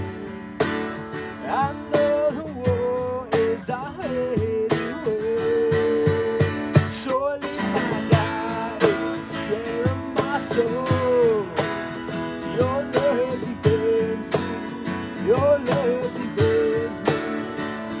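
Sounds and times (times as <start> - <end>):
acoustic guitars strumming: 0.0 - 18.0.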